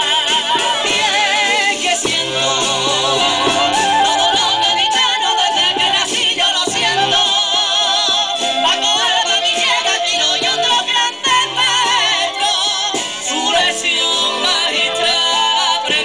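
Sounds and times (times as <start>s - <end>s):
men singing with vibrato: 0.0s - 16.0s.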